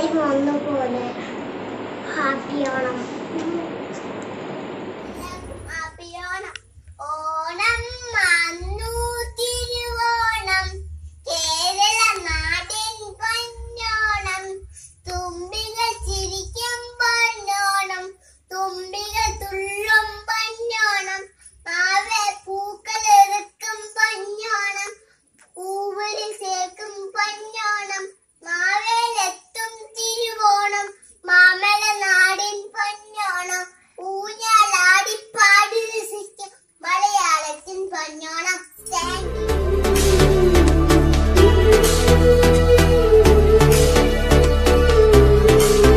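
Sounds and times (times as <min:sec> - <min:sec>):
low rumble: 0:00.0 - 0:07.0, 0:07.7 - 0:14.4, 0:38.9 - 0:45.9
girl singing unaccompanied: 0:05.1 - 0:45.9.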